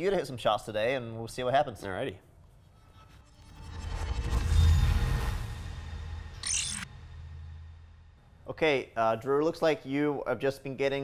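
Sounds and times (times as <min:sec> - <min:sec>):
whoosh: 0:02.9 - 0:08.5
digital glitch noise: 0:06.3 - 0:06.9
deep bass hit: 0:06.9 - 0:08.8.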